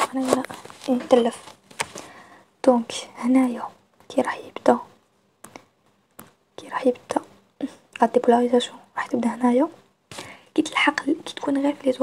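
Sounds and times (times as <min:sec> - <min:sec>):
woman speaking: 0:00.0 - 0:01.5, 0:02.6 - 0:05.0, 0:06.6 - 0:09.8, 0:10.5 - 0:12.0.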